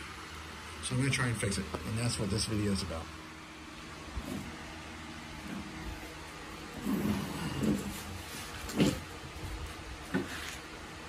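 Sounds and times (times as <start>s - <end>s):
low room tone rumble: 0.0s - 11.0s.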